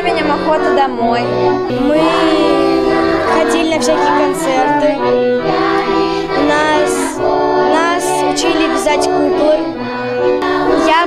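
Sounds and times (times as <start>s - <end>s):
children singing: 0.0s - 11.0s
instrumental accompaniment: 0.0s - 11.0s.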